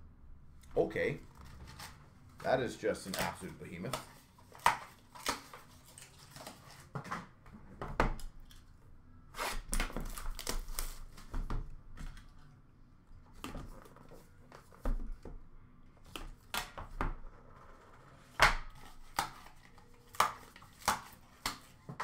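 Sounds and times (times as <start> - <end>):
cards rustling: 1.0 - 7.1
cards clicking and tapping: 2.4 - 5.6, 18.4 - 22.0.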